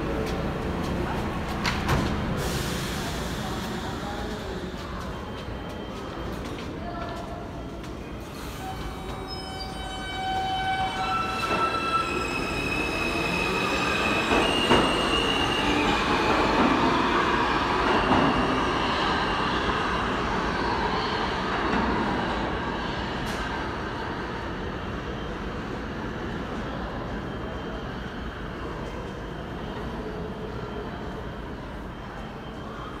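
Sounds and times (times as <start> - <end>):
subway train whine accelerating: 0.0 - 33.0.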